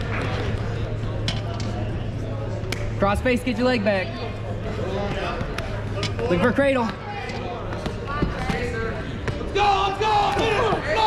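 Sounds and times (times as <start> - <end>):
spectators murmuring: 0.0 - 11.0.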